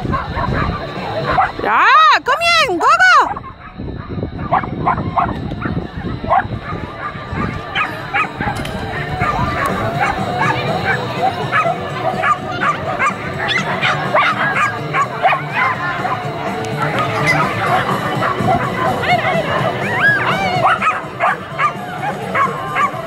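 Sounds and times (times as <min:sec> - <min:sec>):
steady low rumble: 0:03.3 - 0:21.5
dog barking in high yips: 0:17.2 - 0:23.0.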